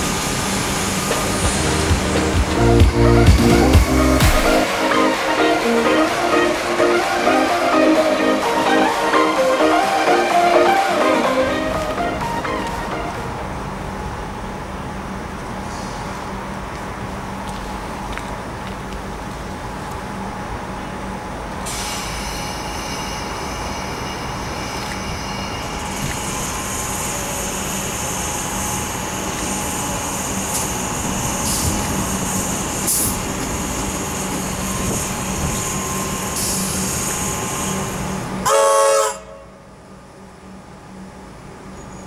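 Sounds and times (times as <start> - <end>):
electric train running: 0.0 - 15.6, 21.0 - 42.0
train horn toot: 38.4 - 39.7.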